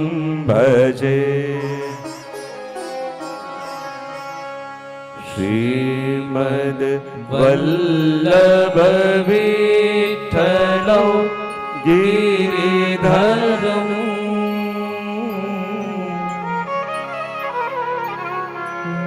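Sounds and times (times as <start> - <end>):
man singing a chant: 0.0 - 2.2, 5.2 - 16.4.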